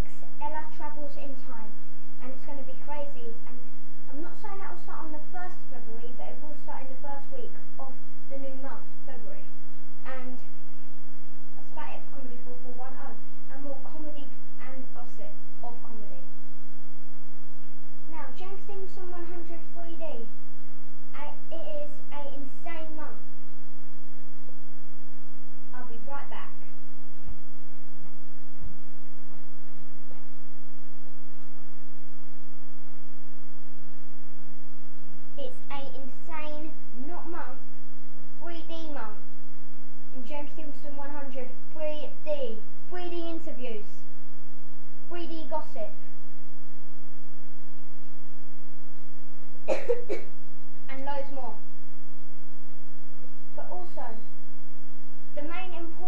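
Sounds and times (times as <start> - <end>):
boy's voice: 0.0 - 10.6, 11.6 - 16.3, 18.1 - 20.3, 21.1 - 23.3, 25.7 - 26.8, 35.4 - 37.6, 38.4 - 39.3, 40.1 - 44.0, 45.1 - 46.1, 50.9 - 51.7, 53.5 - 54.3, 55.3 - 56.0
steady electrical hum: 0.0 - 56.0.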